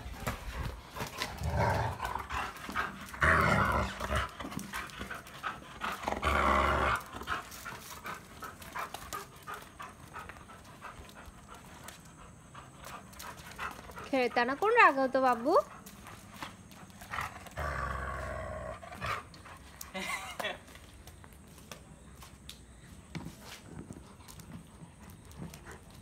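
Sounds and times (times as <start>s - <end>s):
dog panting: 0.0s - 3.2s, 3.8s - 6.2s, 6.9s - 17.6s, 23.7s - 26.0s.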